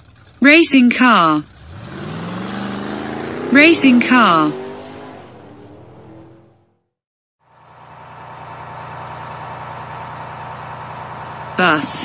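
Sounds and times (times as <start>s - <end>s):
bus engine humming: 0.0s - 12.0s.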